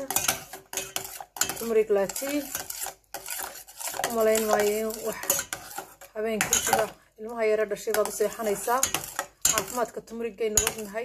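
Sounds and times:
spoon clinking against pot: 0:00.0 - 0:06.9, 0:07.9 - 0:11.0
spoon scraping saucepan: 0:00.0 - 0:11.0.

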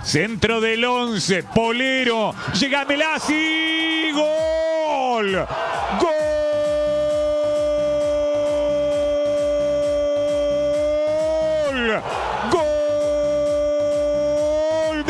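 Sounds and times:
background music with steady beat: 0:00.0 - 0:15.0
man shouting goal cry: 0:02.5 - 0:15.0.

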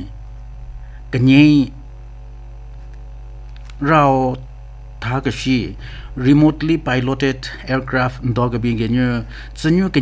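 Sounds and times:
low electrical mains hum: 0:00.0 - 0:10.0
person speaking: 0:03.7 - 0:10.0.

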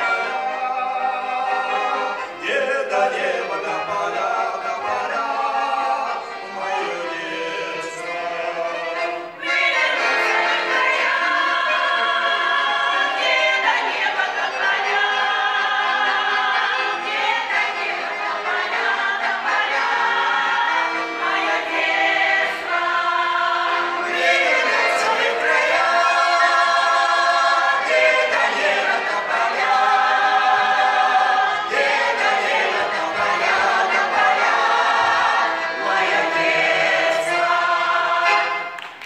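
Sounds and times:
mixed folk choir singing: 0:00.0 - 0:39.0.

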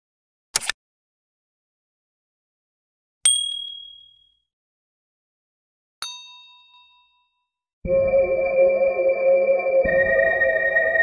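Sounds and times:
lower multi-tone chime: 0:07.9 - 0:11.0.

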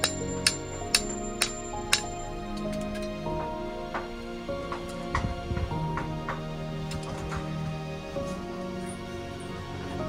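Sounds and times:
hammer striking metal tool: 0:00.0 - 0:02.7
background music: 0:00.0 - 0:10.0.

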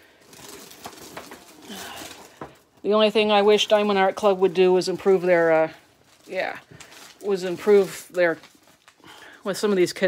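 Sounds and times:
canvas and plastic wrapping crinkling: 0:00.0 - 0:10.0.

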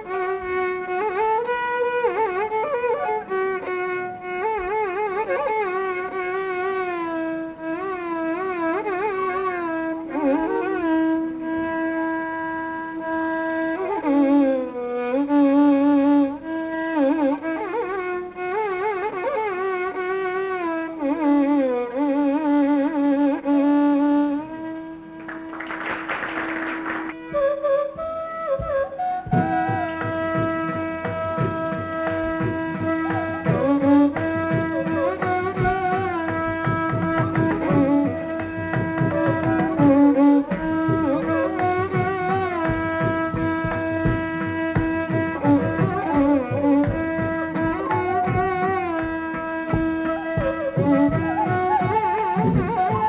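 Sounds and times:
bamboo flute melody: 0:00.0 - 0:53.0
violin: 0:00.0 - 0:53.0
hand drum strokes: 0:26.8 - 0:53.0.

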